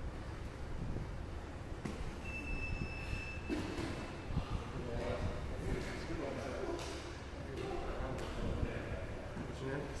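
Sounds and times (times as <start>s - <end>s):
constant low rumble: 0.0s - 2.9s.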